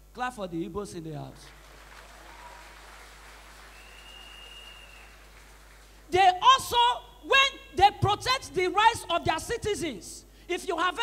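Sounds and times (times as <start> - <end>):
low mains hum: 0.0 - 11.0
faint scattered applause: 1.4 - 6.1
faint steady high whistle: 3.6 - 5.2.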